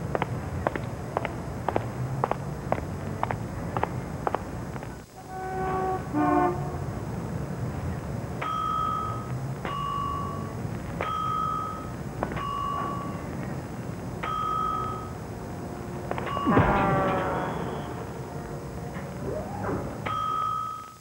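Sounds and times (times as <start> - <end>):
traffic rumble: 0.0 - 21.0.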